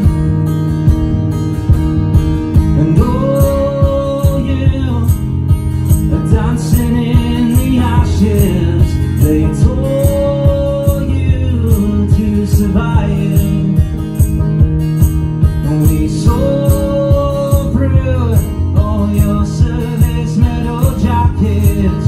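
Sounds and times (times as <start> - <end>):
strummed acoustic guitar: 0.0 - 22.0
man singing slow melody: 2.7 - 14.4, 15.5 - 22.0.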